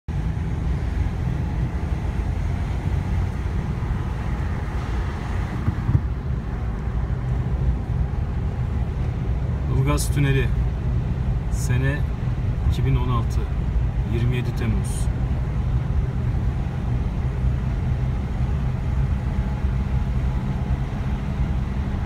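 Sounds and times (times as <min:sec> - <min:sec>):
car engine and tyre rumble: 0:00.1 - 0:22.0
man talking: 0:09.7 - 0:10.6, 0:11.5 - 0:12.1, 0:12.7 - 0:15.1.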